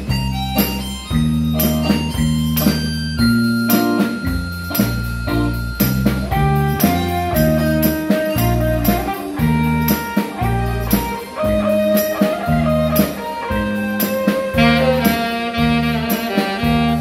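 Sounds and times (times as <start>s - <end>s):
bass line: 0.0s - 17.0s
drum kit beat: 0.0s - 17.0s
plucked guitar-like melody: 0.0s - 17.0s.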